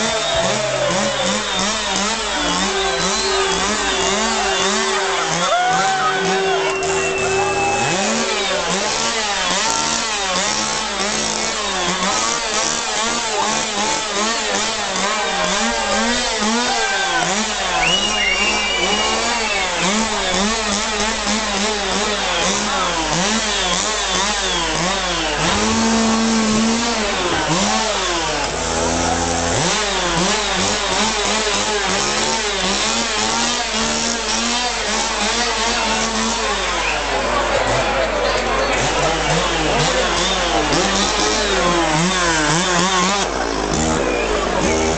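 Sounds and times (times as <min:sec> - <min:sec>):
chainsaw engine revving: 0:00.0 - 0:44.9.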